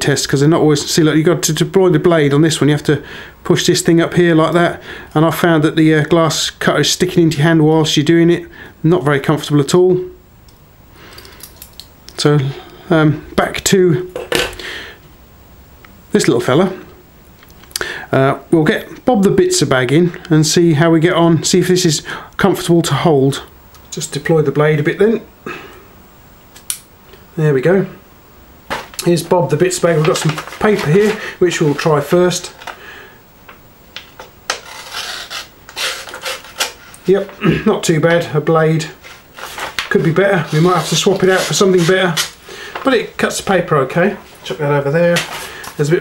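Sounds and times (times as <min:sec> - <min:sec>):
paper rustling: 0:28.7 - 0:32.8, 0:34.2 - 0:37.4, 0:39.0 - 0:43.0, 0:44.1 - 0:45.9
blade slicing paper: 0:34.5 - 0:36.9.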